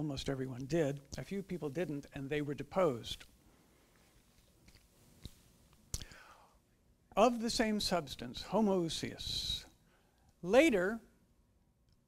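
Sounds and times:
faint breath: 6.0 - 6.6.

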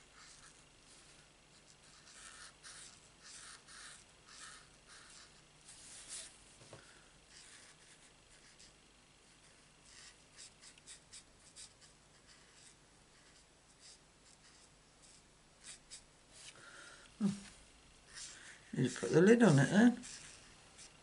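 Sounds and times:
marker scratching on card: 1.6 - 6.3, 9.9 - 16.5.

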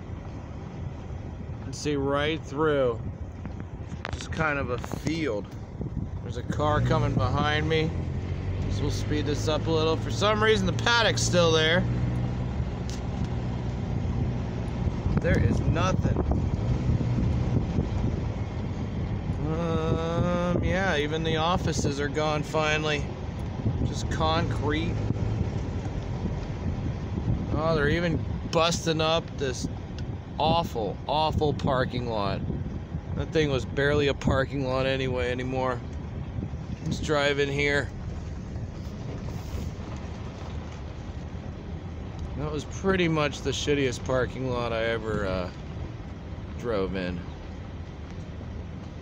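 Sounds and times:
car driving slowly: 0.0 - 49.0
road and wind rumble: 0.0 - 49.0
man speaking: 8.7 - 11.9, 15.2 - 16.2, 19.4 - 23.1, 33.2 - 35.8, 36.9 - 37.9, 42.4 - 45.5, 46.6 - 47.2.

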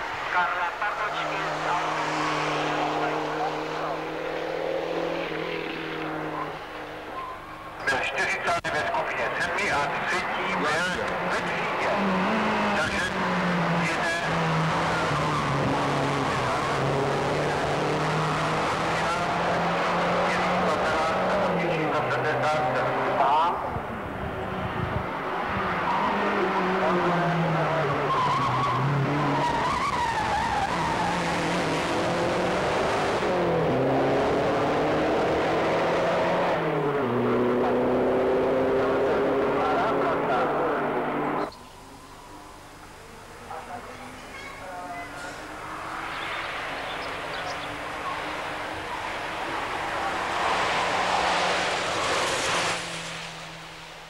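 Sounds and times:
racing car engine driven hard: 0.0 - 44.2, 45.0 - 54.0.

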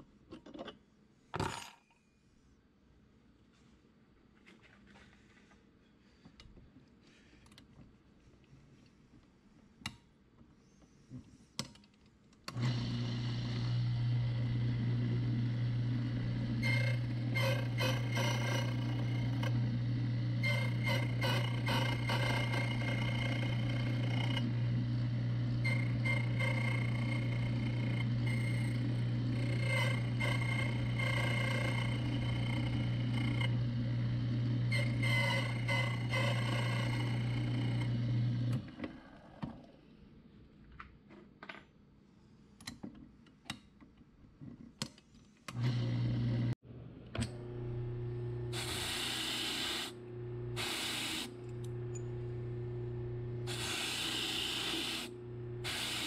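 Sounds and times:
cutter wheel cutting metal key: 20.4 - 24.6, 25.5 - 33.7, 34.6 - 37.9, 53.4 - 56.0
machine motor humming: 47.2 - 56.0.

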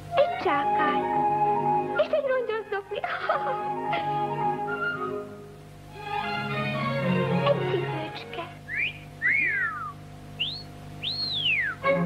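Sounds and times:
whistled bird-like calls: 8.6 - 11.9.

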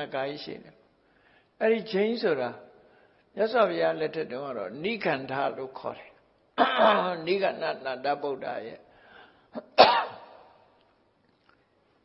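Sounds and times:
man coughing: 6.6 - 7.1, 9.5 - 10.5.

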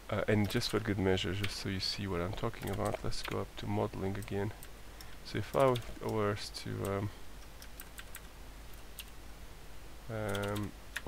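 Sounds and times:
computer keyboard typing: 2.4 - 3.4, 4.1 - 6.2, 6.8 - 9.2, 10.2 - 11.0.

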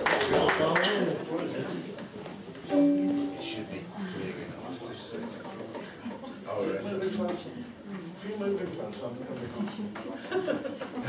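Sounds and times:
low talk in room: 0.0 - 11.0
ukulele chord strummed: 2.7 - 3.9.

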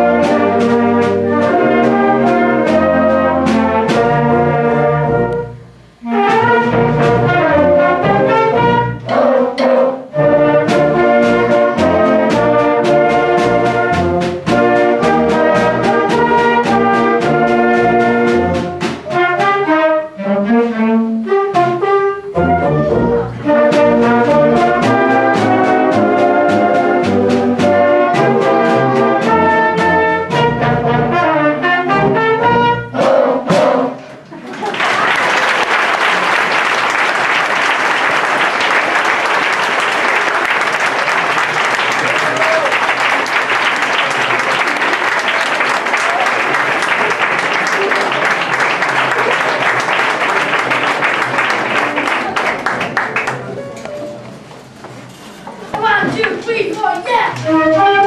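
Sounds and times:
orchestra playing: 0.0 - 34.1, 35.4 - 55.4, 57.1 - 58.0
audience applause: 34.4 - 53.6.

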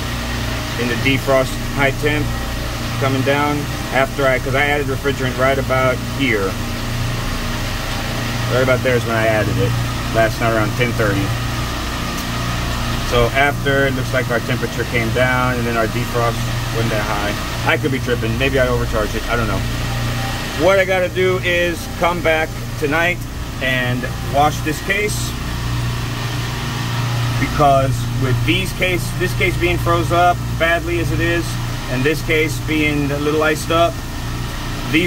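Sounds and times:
machinery humming: 0.0 - 35.0.

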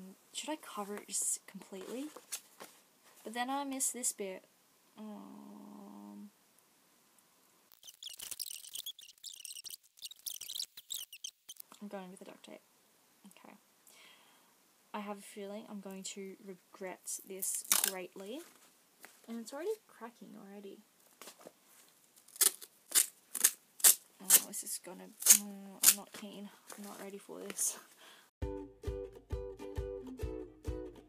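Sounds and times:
person speaking: 0.0 - 2.2, 24.2 - 27.9
sped-up squeaky chatter: 7.7 - 11.6
duct tape scratching: 7.7 - 11.8, 25.2 - 26.0.

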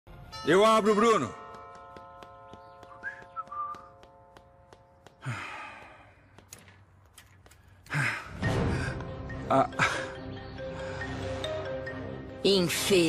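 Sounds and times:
footsteps down a staircase: 1.4 - 7.8.

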